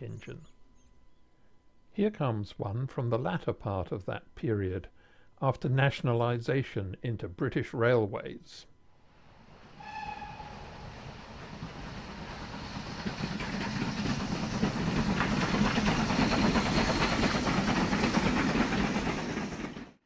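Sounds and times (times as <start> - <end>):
steam train running: 9.3 - 20.0
steam train whistle: 9.7 - 11.2.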